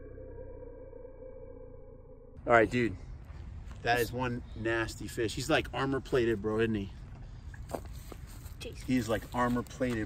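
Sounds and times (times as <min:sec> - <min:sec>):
faint drawn-out tones: 0:00.0 - 0:03.6
steady low hum: 0:00.0 - 0:08.6.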